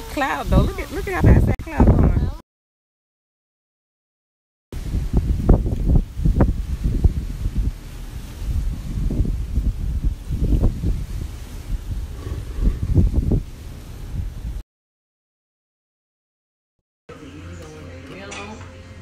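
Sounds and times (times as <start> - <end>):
wind buffeting microphone: 0.0 - 2.4, 4.8 - 14.6.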